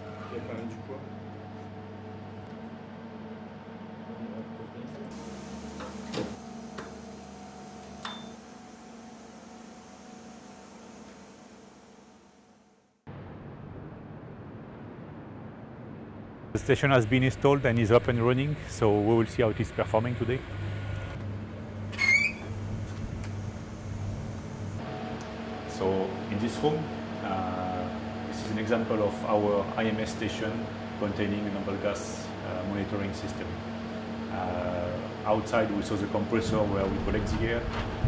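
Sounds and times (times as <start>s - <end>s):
electrical hum of equipment: 0.0s - 12.5s, 16.2s - 38.0s
high squeaky chirp: 21.9s - 22.5s.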